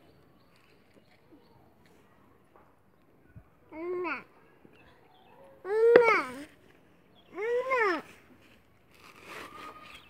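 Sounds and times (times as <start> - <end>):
toddler high-pitched vocal sound: 3.7 - 4.4, 5.6 - 6.5, 7.3 - 8.2.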